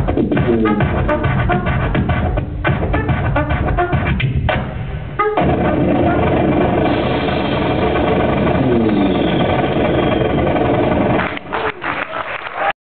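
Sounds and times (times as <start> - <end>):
turntable and trumpet music: 0.0 - 11.6.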